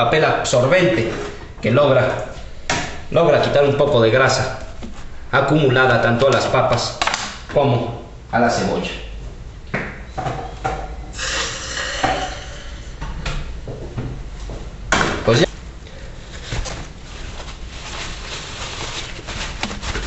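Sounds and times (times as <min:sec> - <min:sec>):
utensils and dishes clattering: 0:10.2 - 0:12.9.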